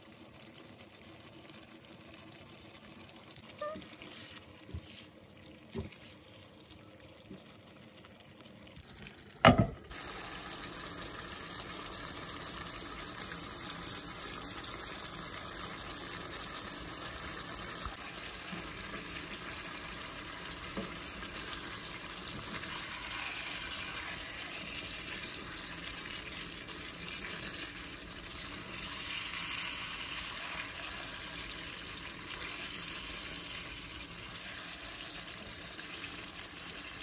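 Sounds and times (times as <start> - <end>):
stew simmering and sizzling: 0.0 - 37.0.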